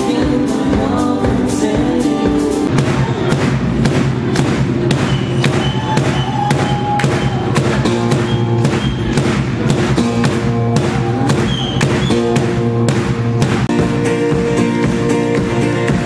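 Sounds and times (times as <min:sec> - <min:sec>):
bass drum beat: 0:00.0 - 0:16.0
live band music: 0:00.0 - 0:16.0.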